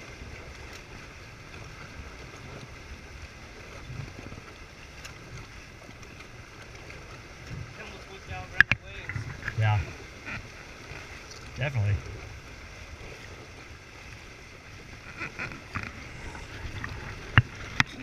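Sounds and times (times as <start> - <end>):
rush of wind and water: 0.0 - 18.0
wind rumbling on microphone: 0.0 - 18.0.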